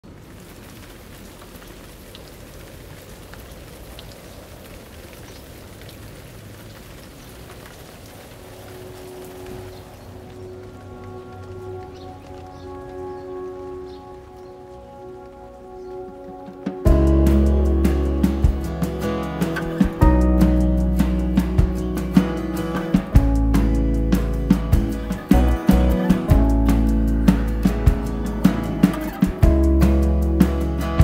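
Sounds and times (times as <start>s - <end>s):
rain pattering: 0.0s - 31.0s
soft sustained musical notes: 8.0s - 31.0s.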